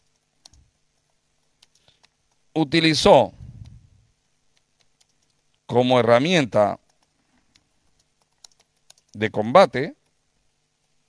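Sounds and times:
keyboard keys typing: 0.0s - 2.5s, 4.5s - 5.6s, 6.8s - 9.2s.

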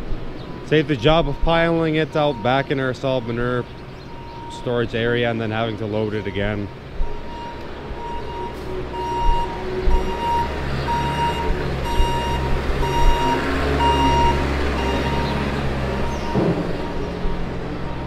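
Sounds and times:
diesel engine running: 0.0s - 18.0s
backup alarm beeping: 0.6s - 18.0s.

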